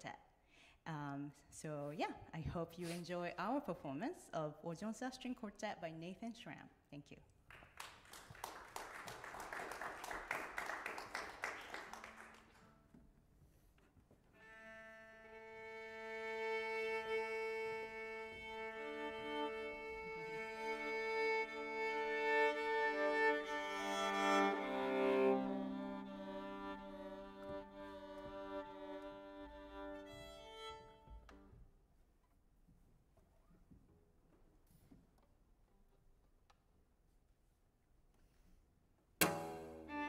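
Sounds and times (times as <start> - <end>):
audience applause: 7.5 - 12.6
string quartet bowed chords: 14.4 - 31.5, 39.2 - 40.0.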